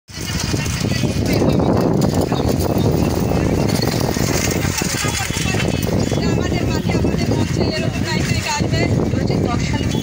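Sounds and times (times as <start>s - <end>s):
people talking: 0.1s - 10.0s.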